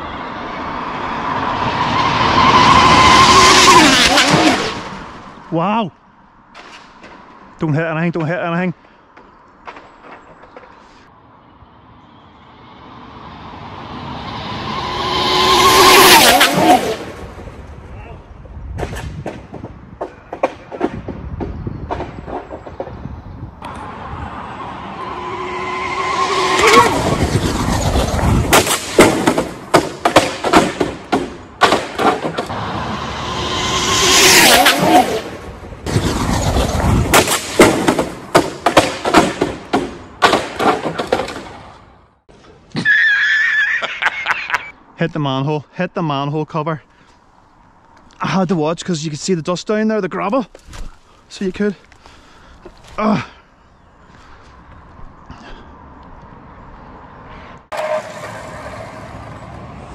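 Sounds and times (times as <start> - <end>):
rc car motor whine passing: 1.1 - 5.0, 12.2 - 17.2, 23.7 - 28.2, 32.5 - 36.8
sharp knocks and crackles: 9.1 - 10.8, 27.4 - 32.6, 35.9 - 41.8.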